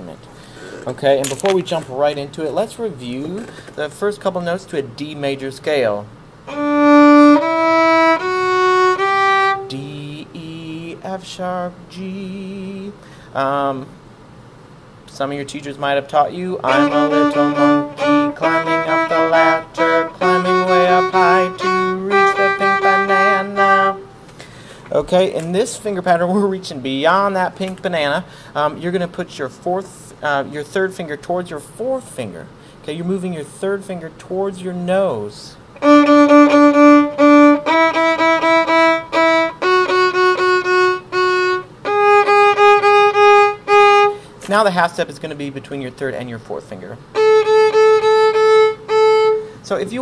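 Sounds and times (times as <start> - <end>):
bowed violin notes: 6.5 - 10.8, 16.2 - 24.2, 35.8 - 44.2, 47.1 - 49.8.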